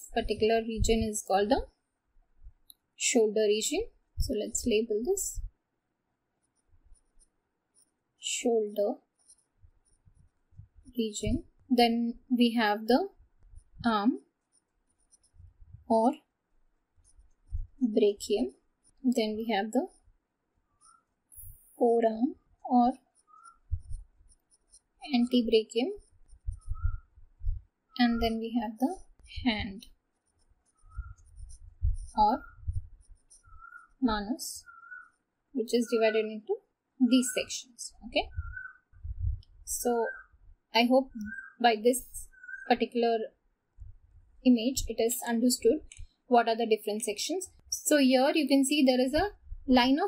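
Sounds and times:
stylus scraping on screen: 6.4 - 39.1.

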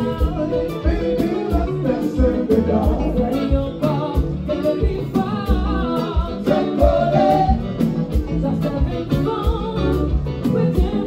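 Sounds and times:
drums and bass beat: 0.0 - 11.0
electric guitar: 0.0 - 11.0
person singing: 0.0 - 11.0.

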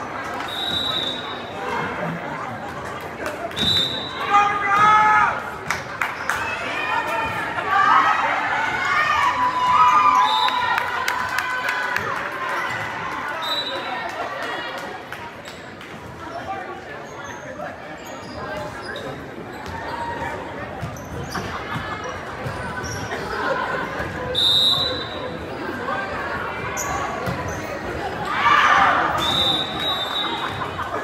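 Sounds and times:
crowd shouting and cheering: 0.0 - 15.1, 19.6 - 31.0
crowd chatter: 0.0 - 31.0
sneakers squeaking on hardwood floor: 20.8 - 21.6.

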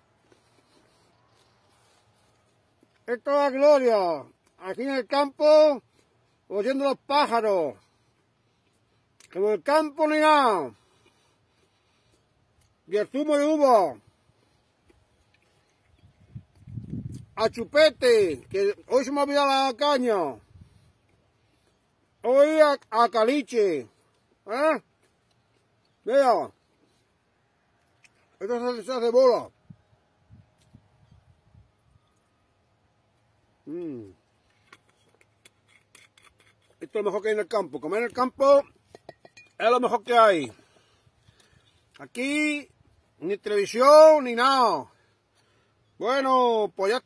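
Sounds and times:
man speaking: 3.0 - 5.8, 6.5 - 7.8, 9.3 - 10.8, 12.9 - 14.0, 17.4 - 20.4, 22.2 - 24.8, 26.0 - 26.5, 28.4 - 29.5, 33.7 - 34.2, 36.8 - 38.7, 39.6 - 40.6, 42.0 - 44.9, 46.0 - 47.0
man talking: 3.0 - 5.8, 6.5 - 7.8, 9.2 - 10.8, 12.9 - 14.0, 17.4 - 20.4, 22.2 - 24.8, 26.0 - 26.6, 28.4 - 29.5, 33.6 - 34.2, 36.8 - 38.7, 39.6 - 40.6, 42.0 - 44.9, 46.0 - 47.0.

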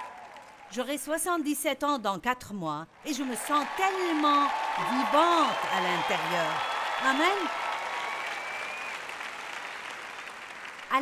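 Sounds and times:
audience applauding: 0.0 - 0.7, 3.1 - 11.0.

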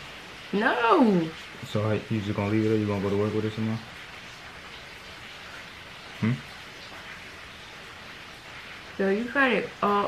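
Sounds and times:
person saying hmm: 6.2 - 6.4.

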